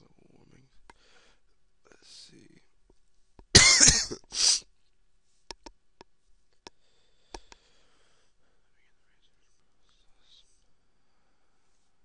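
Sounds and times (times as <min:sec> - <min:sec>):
faint breath: 0:00.9 - 0:01.6, 0:06.7 - 0:12.0
person coughing: 0:03.5 - 0:04.6.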